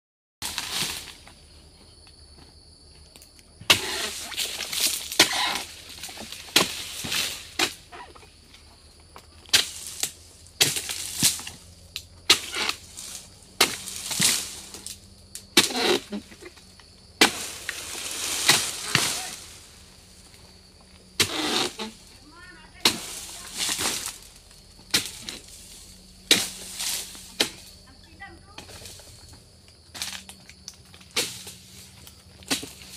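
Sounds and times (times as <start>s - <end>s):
palm fronds crashing and knocking: 0.4s - 1.4s, 3.6s - 8.2s, 9.4s - 11.7s, 12.3s - 20.5s, 21.2s - 29.3s, 29.9s - 32.9s.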